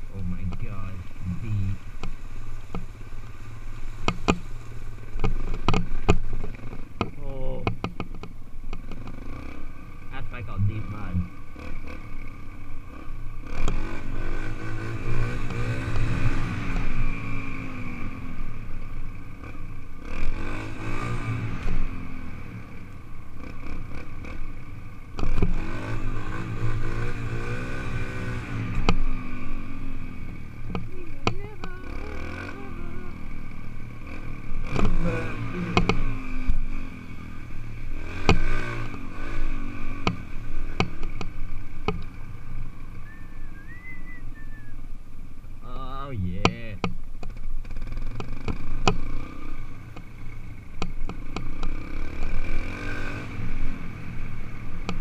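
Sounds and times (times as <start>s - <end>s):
sharp knocks and rattles: 5.1s - 9.1s
dirt bike engine revving: 8.8s - 18.6s, 19.2s - 44.8s, 47.6s - 55.0s.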